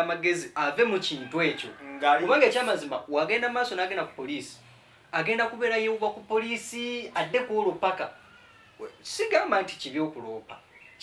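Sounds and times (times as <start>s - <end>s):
man talking animatedly: 0.0s - 8.2s, 8.8s - 10.6s.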